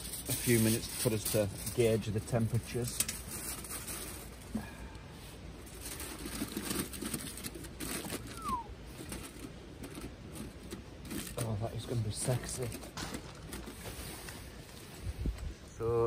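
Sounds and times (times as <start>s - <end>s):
tin foil crinkling: 0.0s - 5.0s, 5.6s - 14.9s.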